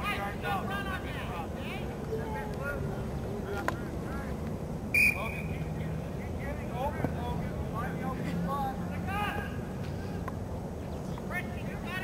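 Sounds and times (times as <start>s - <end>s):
distant shouting and calling: 0.0s - 12.0s.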